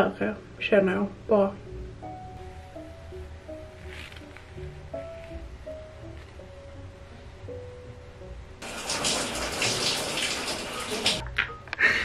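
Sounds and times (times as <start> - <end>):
shower spray of running water: 8.6 - 11.2.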